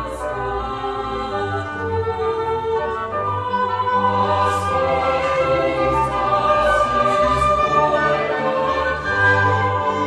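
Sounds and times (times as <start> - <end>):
baroque orchestra: 0.0 - 10.0
choir singing: 0.0 - 10.0.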